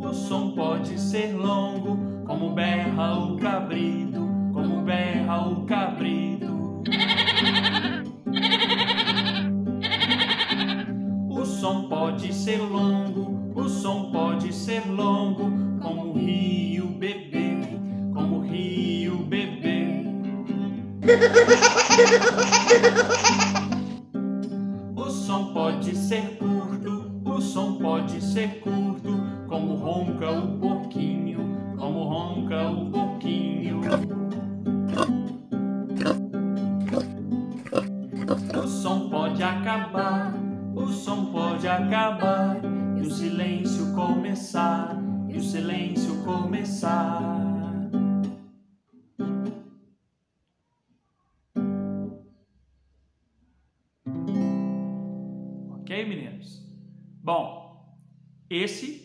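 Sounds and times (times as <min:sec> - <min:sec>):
acoustic guitar: 0:00.0 - 0:49.8, 0:51.4 - 0:52.6, 0:54.0 - 0:58.4
acoustic guitar strumming: 0:06.7 - 0:11.6, 0:28.2 - 0:42.1
goat kid bleating: 0:06.8 - 0:10.9, 0:21.0 - 0:23.9, 0:36.9 - 0:38.7
baby laughing: 0:06.9 - 0:10.9, 0:21.0 - 0:23.9.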